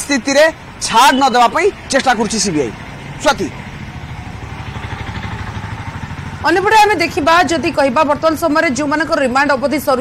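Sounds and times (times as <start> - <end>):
vehicle engine running: 0.3 - 10.0.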